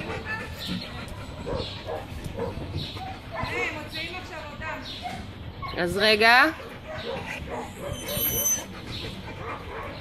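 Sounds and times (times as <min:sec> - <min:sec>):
dog whimpering: 0:07.5 - 0:09.3.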